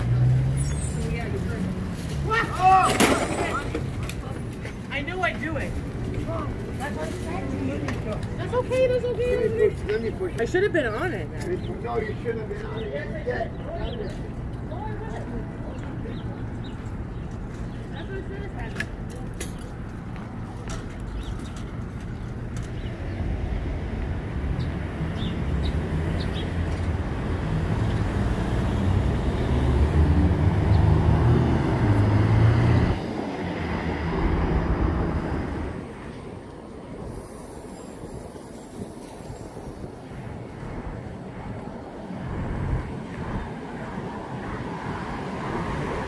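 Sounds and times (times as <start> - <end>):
cars passing: 0.0 - 46.0.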